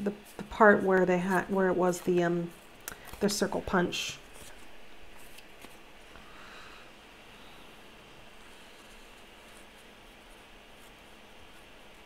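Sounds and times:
paper rustling: 0.1s - 5.8s.

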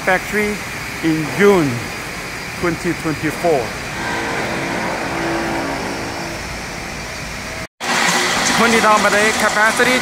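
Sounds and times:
machinery drone: 3.6s - 7.7s.

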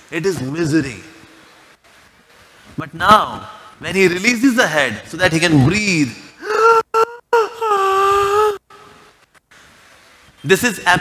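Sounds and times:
man's wordless aaah: 6.4s - 9.1s.

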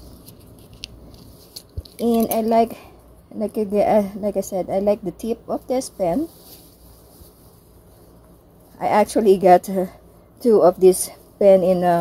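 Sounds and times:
pen handling clicks and rustles: 0.2s - 2.6s.

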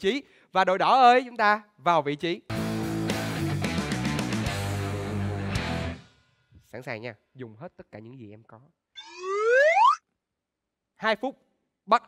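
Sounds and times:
rising boing sound effect: 9.0s - 10.0s.

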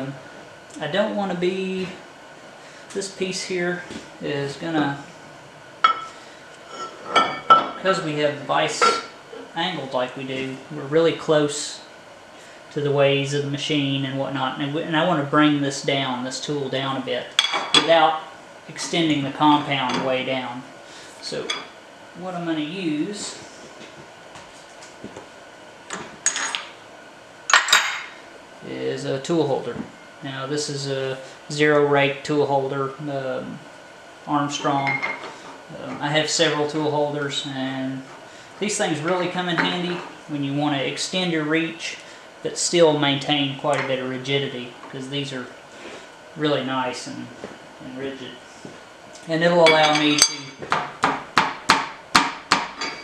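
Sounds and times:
metal tool holders clinking: 49.7s - 50.6s.

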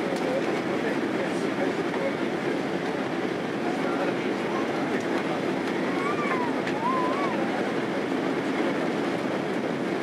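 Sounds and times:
aircraft engines rumbling: 0.0s - 10.0s
rushing air in cabin: 0.0s - 10.0s.

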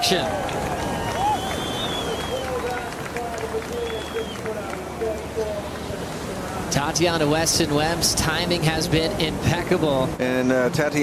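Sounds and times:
ocean surf breaking: 0.0s - 10.5s.

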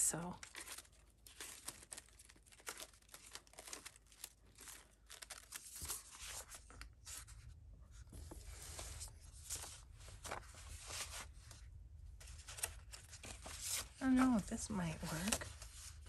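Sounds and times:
paper pages rustling: 0.4s - 16.0s.

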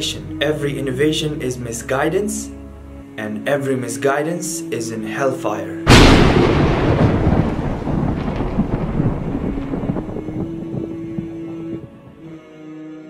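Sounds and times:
thunder rolling: 5.9s - 12.2s.

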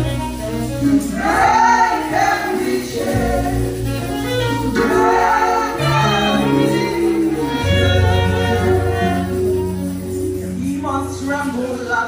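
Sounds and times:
choir singing gospel: 0.0s - 12.0s
low bass: 0.0s - 12.0s.

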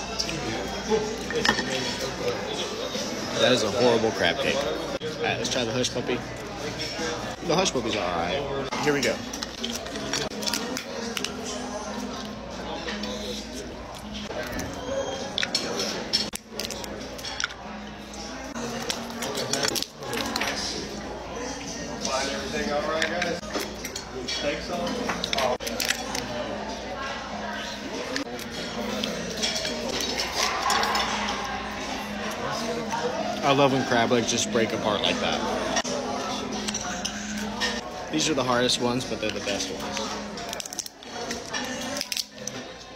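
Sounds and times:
restaurant chatter: 0.0s - 42.9s
crab shells cracking: 16.2s - 17.6s, 25.2s - 26.3s, 40.3s - 42.7s.

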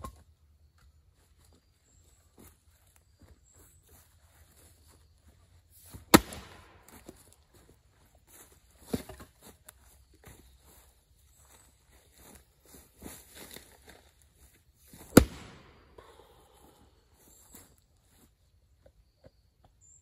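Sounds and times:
footsteps in dry leaves: 1.2s - 15.5s
axe chopping wood: 6.0s - 7.0s, 15.0s - 15.8s.

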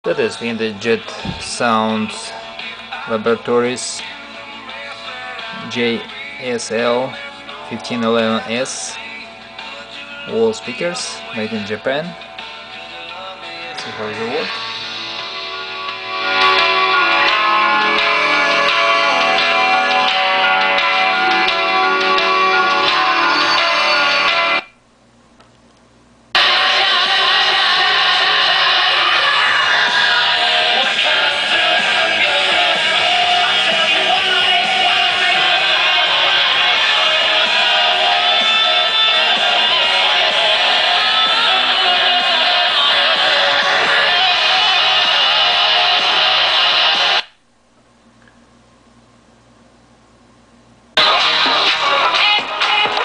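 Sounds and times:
guitar music through a speaker: 0.1s - 24.7s, 26.4s - 47.3s, 51.0s - 53.0s.

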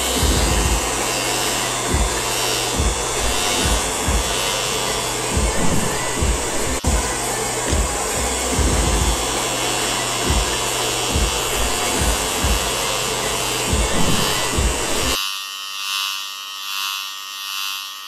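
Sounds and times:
music with steady beat: 0.0s - 15.2s
electric hair clippers buzzing: 0.0s - 18.0s.

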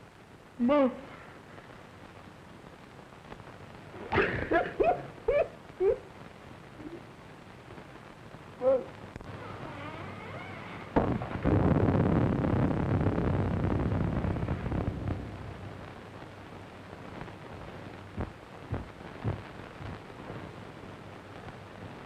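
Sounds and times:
loud rumbling crash: 10.9s - 16.4s.

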